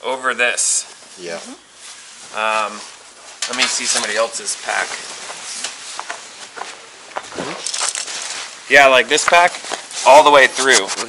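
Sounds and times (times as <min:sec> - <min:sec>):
rustling movement: 0:00.6 - 0:11.0.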